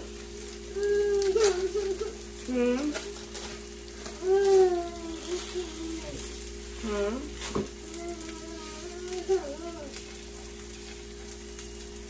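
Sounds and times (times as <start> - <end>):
faint hum: 0.0 - 12.0
child whining: 0.7 - 3.2, 4.0 - 10.0.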